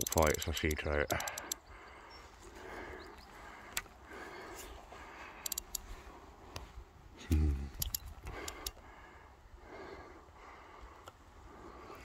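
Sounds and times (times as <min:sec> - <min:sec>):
light reel clicks: 0:00.0 - 0:01.6, 0:05.4 - 0:05.9, 0:07.7 - 0:08.8
sharp reel click: 0:00.0 - 0:01.6, 0:05.4 - 0:05.8
fishing rod and reel handling: 0:05.4 - 0:05.8.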